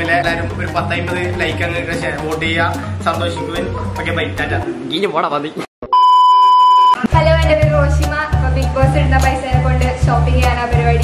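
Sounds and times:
test tone beep: 0:05.9 - 0:07.1.

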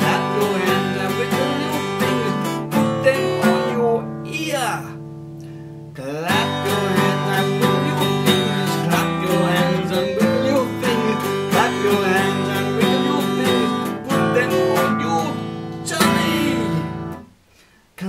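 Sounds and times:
acoustic guitar strumming chords: 0:00.0 - 0:17.4.

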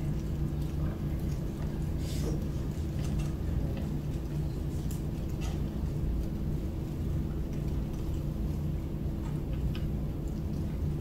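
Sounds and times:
faint hum: 0:00.0 - 0:11.0
low room rumble: 0:00.0 - 0:11.0.

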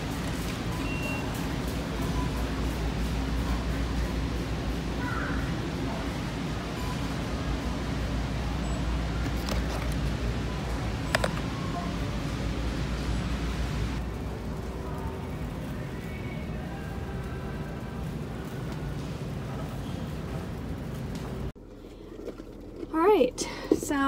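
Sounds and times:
low hum and rumble: 0:00.0 - 0:24.0.

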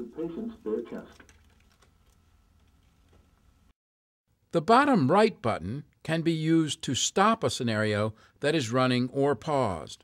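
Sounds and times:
plastic package rustling: 0:01.1 - 0:03.2.

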